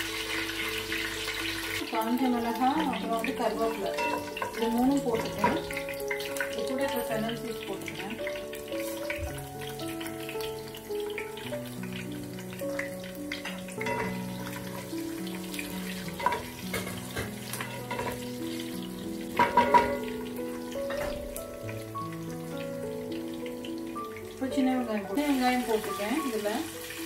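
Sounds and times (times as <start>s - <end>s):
slow held-note music: 0.0s - 27.0s
spices sizzling in oil: 0.0s - 27.0s.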